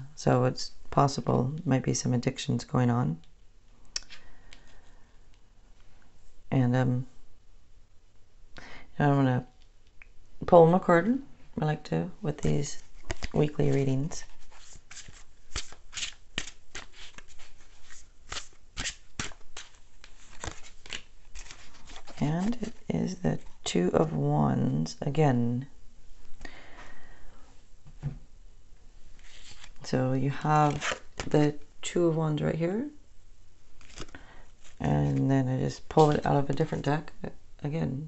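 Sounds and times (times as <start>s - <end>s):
cards being shuffled: 12.6s - 23.6s, 29.2s - 29.9s, 30.6s - 31.4s, 33.8s - 36.8s.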